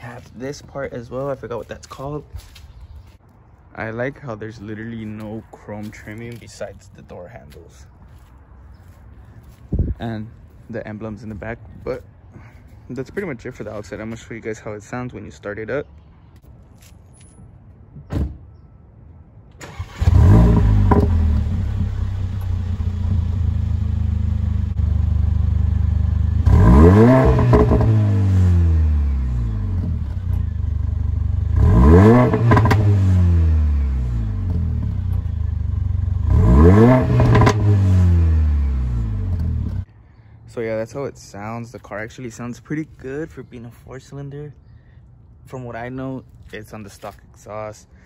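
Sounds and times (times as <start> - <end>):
car engine starting: 19.5 - 39.9
car engine revving with crackles: 19.6 - 39.9.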